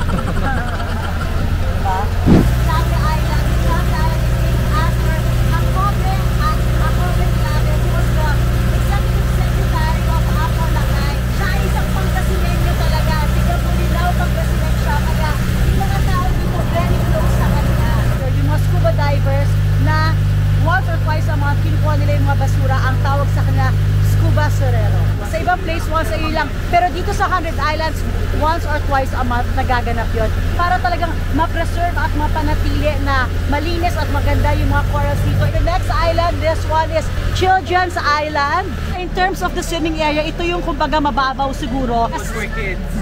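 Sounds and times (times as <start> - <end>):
boat engine droning: 0.0 - 43.0
people talking: 0.0 - 43.0.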